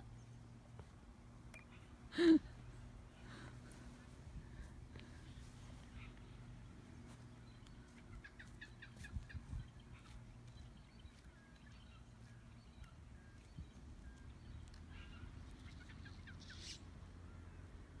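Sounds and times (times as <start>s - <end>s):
low steady hum: 0.0s - 18.0s
bird chirps: 7.1s - 17.7s.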